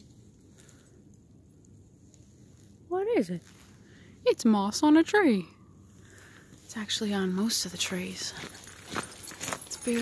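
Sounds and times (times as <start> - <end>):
faint outdoor hiss: 0.0 - 10.0
woman's voice: 2.9 - 3.5, 4.2 - 5.6, 6.7 - 8.5, 9.7 - 10.0.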